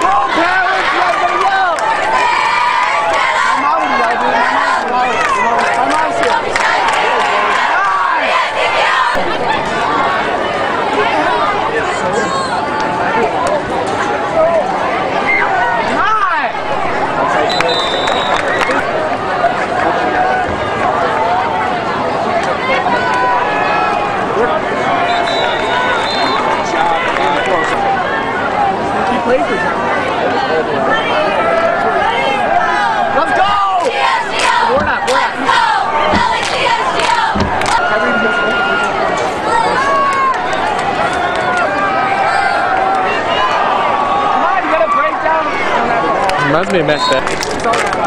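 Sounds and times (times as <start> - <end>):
crowd yelling and cheering: 0.0 - 48.0.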